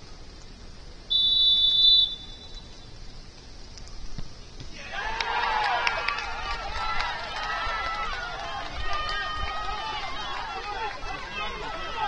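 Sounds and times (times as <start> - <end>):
referee's whistle blast: 1.1 - 2.7.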